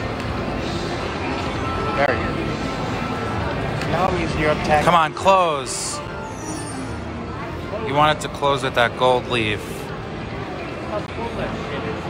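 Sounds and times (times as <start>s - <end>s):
slot machine game music: 5.6s - 7.6s.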